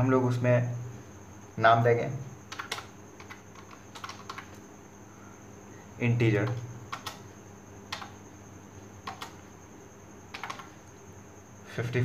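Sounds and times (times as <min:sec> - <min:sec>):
computer keyboard typing: 0:02.5 - 0:04.6, 0:06.3 - 0:08.2, 0:09.0 - 0:09.5, 0:10.3 - 0:10.8.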